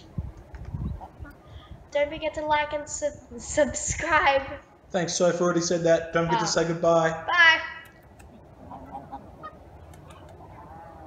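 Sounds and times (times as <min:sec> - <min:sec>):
hens clucking: 0:08.2 - 0:11.0.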